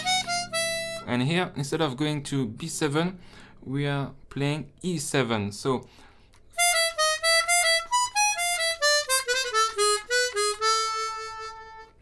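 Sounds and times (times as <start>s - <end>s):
chromatic harmonica jazz phrase: 0.0s - 1.1s, 6.5s - 12.0s.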